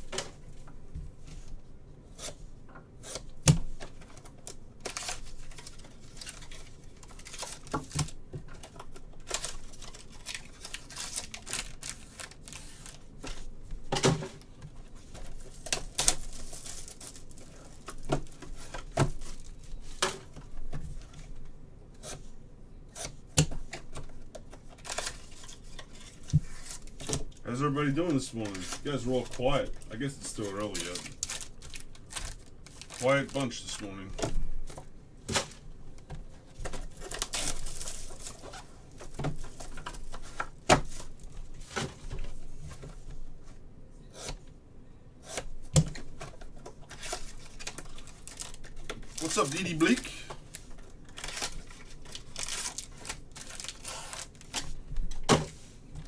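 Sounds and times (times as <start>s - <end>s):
plastic wrap rustling and tearing: 3.0s - 21.4s, 23.9s - 42.9s, 45.4s - 55.6s.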